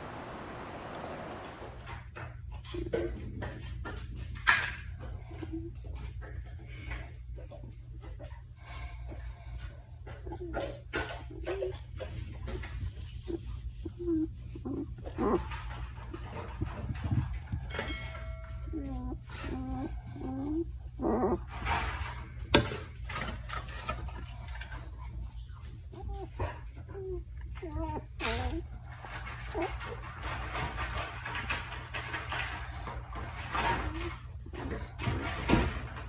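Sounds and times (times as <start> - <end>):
dog whining: 0.0 - 1.8, 10.0 - 22.2, 25.4 - 30.3, 33.5 - 35.0
steady background noise: 0.0 - 1.9
steady low hum: 0.0 - 2.0
puppy squeaking and grunting: 10.0 - 17.8, 18.6 - 22.6, 24.9 - 32.6, 33.3 - 35.6.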